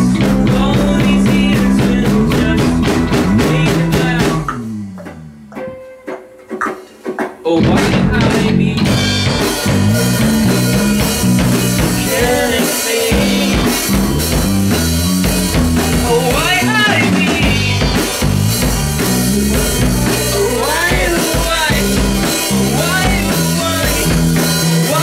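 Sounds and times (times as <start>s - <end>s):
man singing: 0.0s - 4.8s, 7.4s - 9.1s, 10.1s - 14.1s, 15.7s - 18.0s, 19.0s - 25.0s
bass guitar: 0.0s - 6.0s, 7.5s - 25.0s
electric guitar: 0.0s - 6.8s, 7.4s - 25.0s
drum kit: 0.0s - 25.0s.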